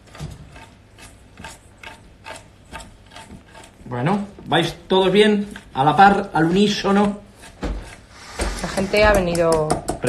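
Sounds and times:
wire whisk scraping metal bowl: 0.6s - 4.2s.

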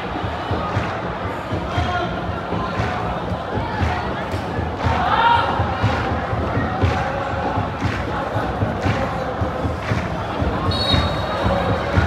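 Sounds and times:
low drum beats: 0.0s - 12.0s
stadium crowd chanting: 0.0s - 12.0s.

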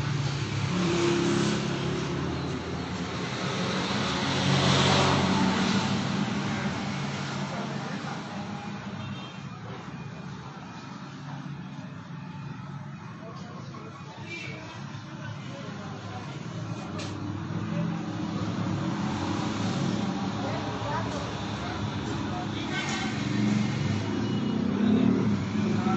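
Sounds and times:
vehicle engine passing by: 0.0s - 2.4s, 3.0s - 7.3s.

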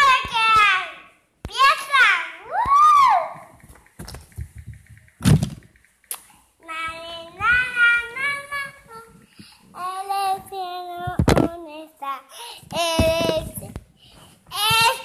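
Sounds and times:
thump: 5.2s - 5.6s
girl singing: 6.6s - 13.8s, 14.5s - 15.0s.

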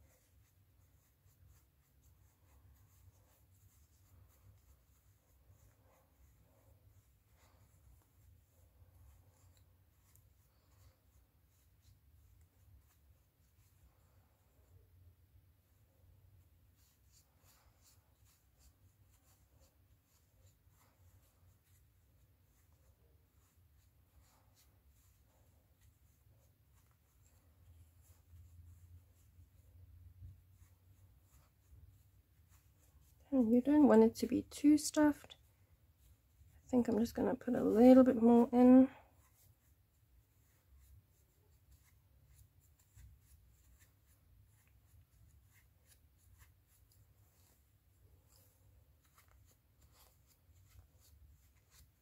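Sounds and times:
scratchy rustling of stuffing: 0.0s - 52.0s.

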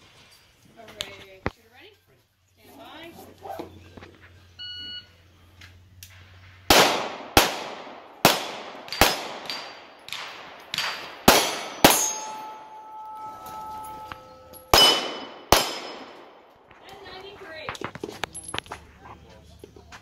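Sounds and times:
pistol shots: 6.7s - 12.5s, 14.6s - 16.6s
steel plate ringing: 10.9s - 16.2s.

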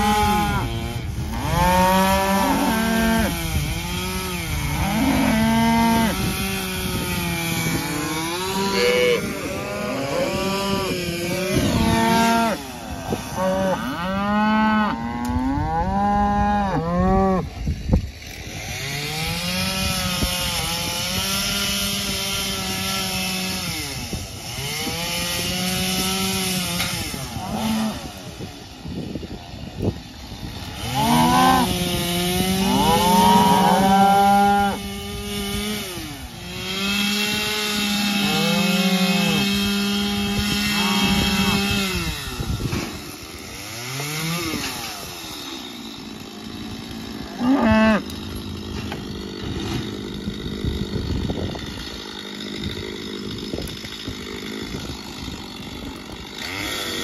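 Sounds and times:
cattle mooing: 0.0s - 3.4s, 4.8s - 6.2s, 7.9s - 17.5s, 30.9s - 34.8s, 38.0s - 39.6s, 40.5s - 41.8s, 47.3s - 48.1s
chainsaw revving: 0.0s - 57.0s.

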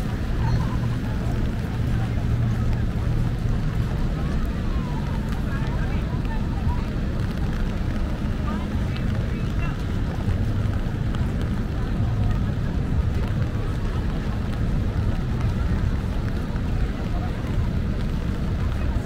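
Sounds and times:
indistinct crowd chatter: 0.0s - 19.0s
low rumble of traffic: 0.0s - 19.0s.

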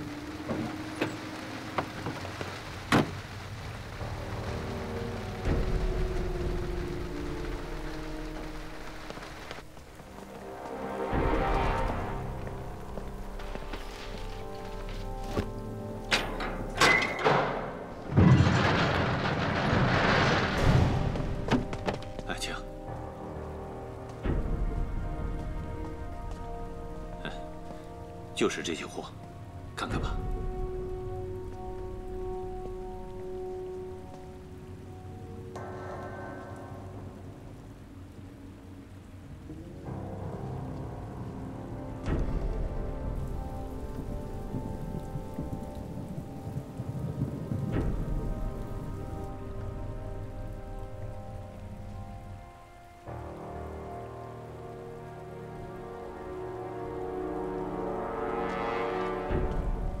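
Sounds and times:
tense dramatic film score: 0.0s - 60.0s.

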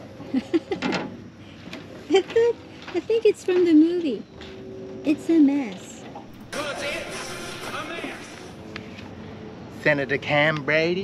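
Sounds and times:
background music: 6.3s - 8.8s.

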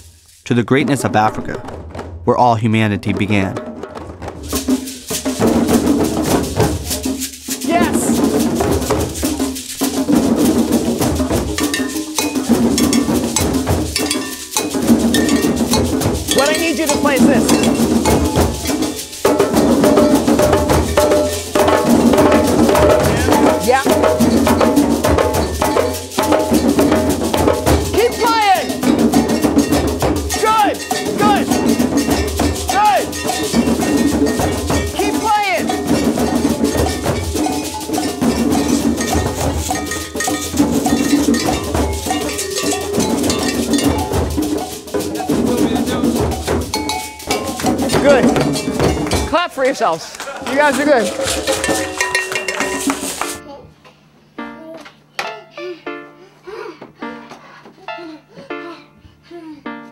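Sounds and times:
gourd shaker rattling: 0.0s - 0.5s, 4.2s - 53.4s
hand drums playing: 0.0s - 53.5s.

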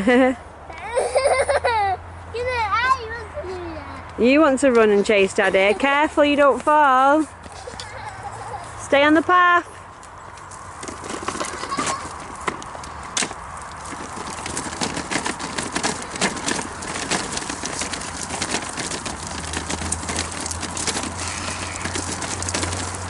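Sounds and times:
pushchair wheels on gravel: 4.2s - 23.0s
footsteps crunching on gravel: 9.8s - 23.0s.

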